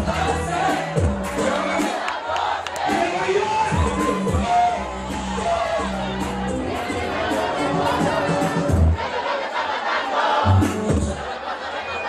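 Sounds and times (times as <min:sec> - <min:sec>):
loud dance music: 0:00.0 - 0:11.4
party crowd singing and shouting: 0:00.0 - 0:12.0.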